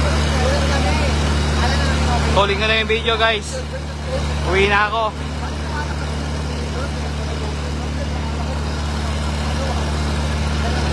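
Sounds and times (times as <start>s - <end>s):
fire truck engine idling: 0.0s - 10.9s.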